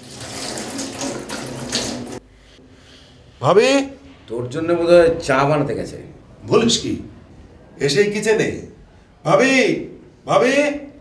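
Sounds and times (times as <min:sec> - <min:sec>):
tap water running: 0:00.0 - 0:02.2
water splashing over hands: 0:00.0 - 0:02.2.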